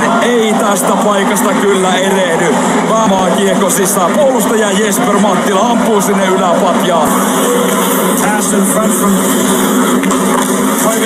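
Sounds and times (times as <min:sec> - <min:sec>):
commentator speaking: 0:00.0 - 0:09.9, 0:10.7 - 0:11.0
arena crowd hum: 0:00.0 - 0:11.0.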